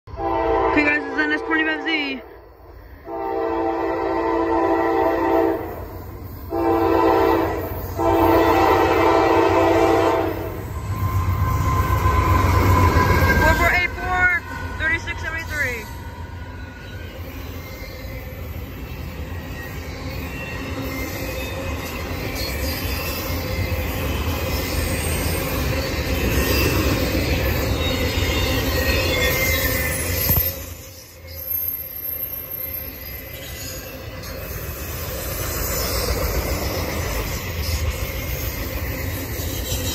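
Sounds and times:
locomotive air horn: 0:00.1 - 0:01.8, 0:03.1 - 0:05.8, 0:06.5 - 0:10.6
locomotive passing rumble: 0:02.6 - 0:17.5
wheel squeal: 0:16.4 - 0:39.9.

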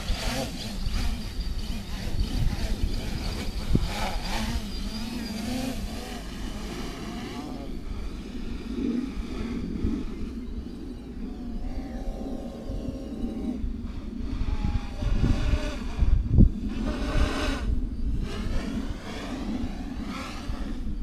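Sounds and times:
drone propellers whining: 0:00.0 - 0:21.0
wind rumble on microphone: 0:00.0 - 0:21.0.

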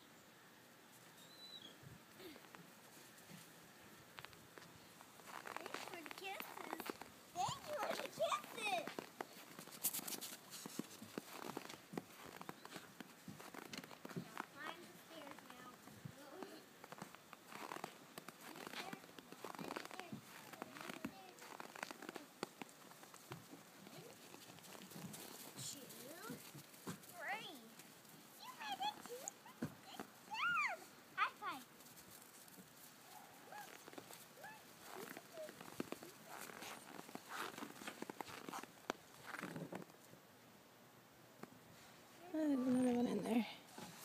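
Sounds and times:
crunching steps on snow: 0:04.2 - 0:14.5, 0:16.9 - 0:27.0, 0:33.5 - 0:39.8.

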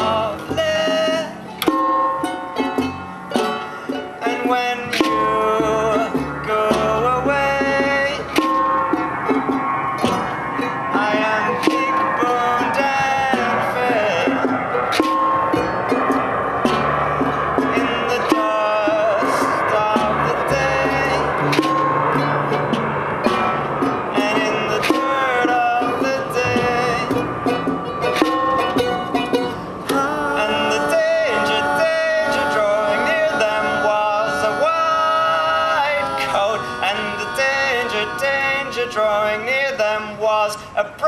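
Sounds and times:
double bass notes: 0:00.0 - 0:40.4
strummed charango: 0:00.0 - 0:41.0.

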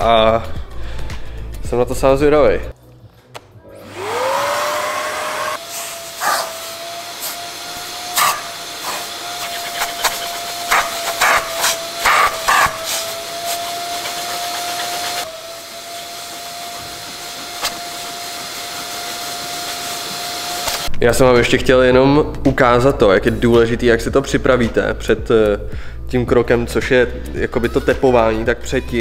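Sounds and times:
vacuum motor whining: 0:03.6 - 0:20.9
vacuum nozzle sucking debris: 0:03.8 - 0:20.9.

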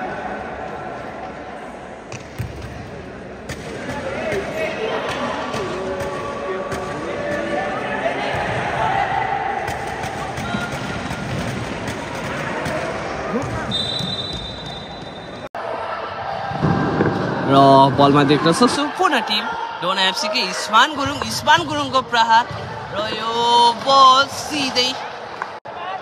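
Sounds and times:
echoing spectators' voices: 0:00.0 - 0:26.0.

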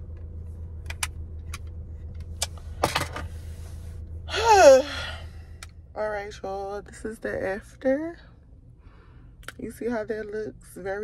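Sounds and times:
car engine idling: 0:00.0 - 0:11.0
person sighing or groaning: 0:04.3 - 0:05.4.

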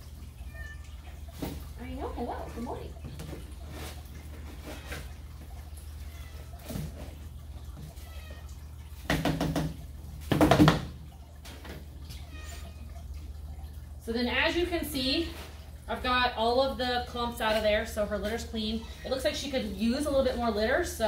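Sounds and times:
cat meowing: 0:00.4 - 0:01.0, 0:12.2 - 0:12.9
scooping cat litter: 0:01.2 - 0:08.4, 0:14.9 - 0:20.2.

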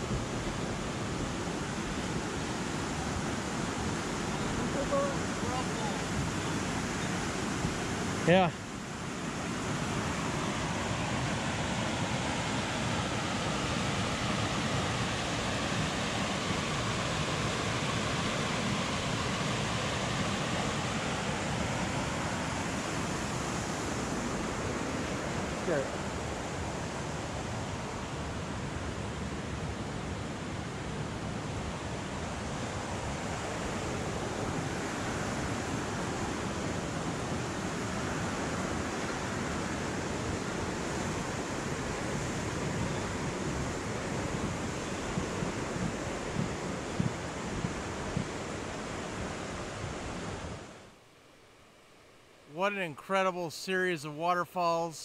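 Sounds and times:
river rapids rushing: 0:00.0 - 0:28.2.

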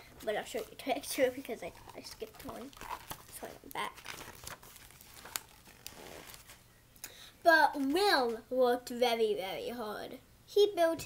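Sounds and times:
pages rustling: 0:00.1 - 0:06.7.

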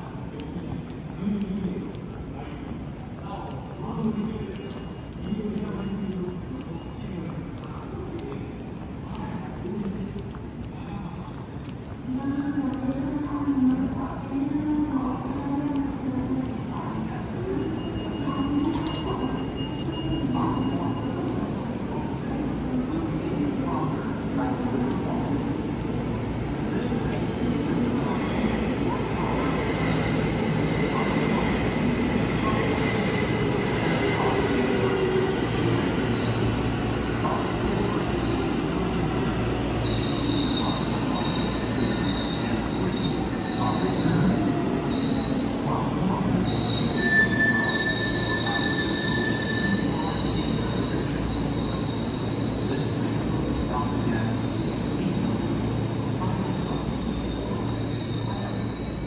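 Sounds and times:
high squealing from rails: 0:17.4 - 0:21.6, 0:27.7 - 0:59.0.

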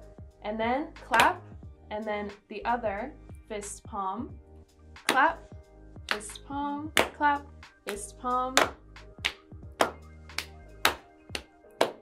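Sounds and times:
quiet background music: 0:00.0 - 0:12.0
hand claps: 0:01.1 - 0:01.4, 0:06.1 - 0:07.2, 0:07.8 - 0:12.0.

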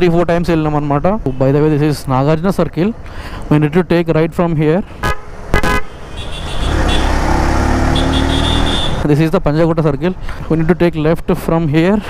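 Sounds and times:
vehicle horn toots: 0:05.0 - 0:09.0
motorcycle engine accelerating: 0:06.4 - 0:09.0.

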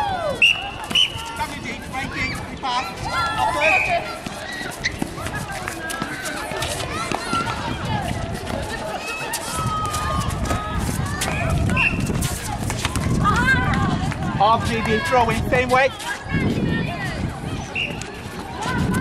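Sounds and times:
people calling and shouting: 0:00.0 - 0:19.0
running footsteps on hard court: 0:03.9 - 0:19.0.

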